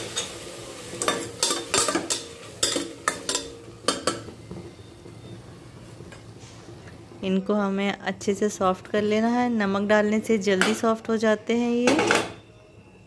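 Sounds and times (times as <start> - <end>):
spoon clinking and scraping pot: 0.0 - 4.4
soft sizzle of frying: 0.0 - 12.8.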